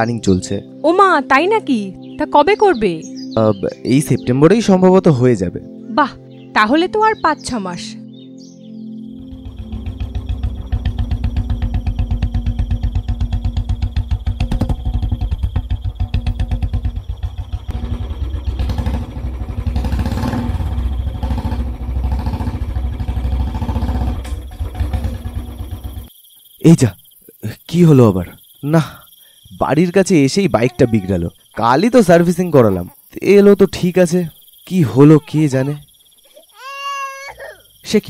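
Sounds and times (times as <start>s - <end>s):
crickets chirring: 0.0s - 38.0s
motorcycle engine running: 9.2s - 26.1s.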